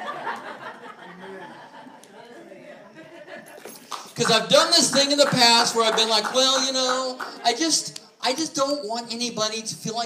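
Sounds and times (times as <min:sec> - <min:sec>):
light laughter: 0:00.0 - 0:02.1.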